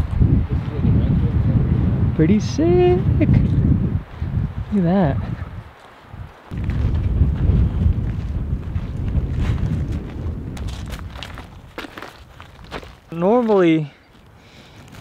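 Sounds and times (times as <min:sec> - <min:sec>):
wind buffeting microphone: 0:00.0 - 0:15.0
footsteps crunching on gravel: 0:05.7 - 0:15.0.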